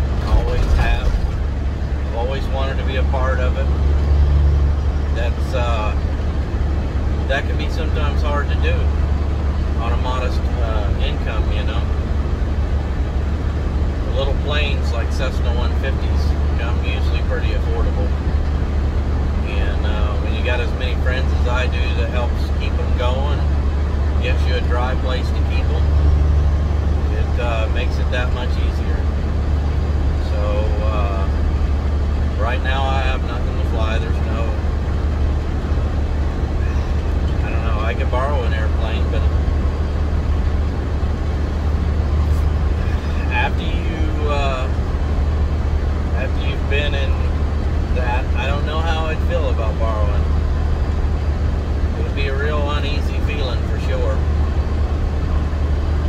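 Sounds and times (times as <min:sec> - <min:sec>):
man talking: 0:00.0 - 0:01.3, 0:02.1 - 0:03.8, 0:05.1 - 0:06.0, 0:07.2 - 0:09.0, 0:09.8 - 0:12.0, 0:14.0 - 0:18.2, 0:19.4 - 0:23.5, 0:24.2 - 0:26.0, 0:27.0 - 0:29.1, 0:30.2 - 0:31.4, 0:32.3 - 0:34.6, 0:36.6 - 0:39.4, 0:42.3 - 0:44.8, 0:46.1 - 0:50.4, 0:51.9 - 0:54.2
truck engine drone: 0:00.0 - 0:56.0.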